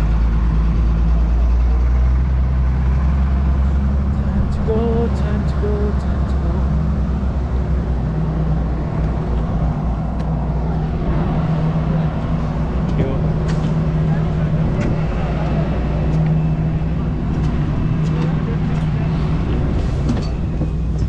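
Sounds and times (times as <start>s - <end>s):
low mechanical engine drone: 0.0s - 21.0s
wind rumbling on microphone: 6.6s - 21.0s.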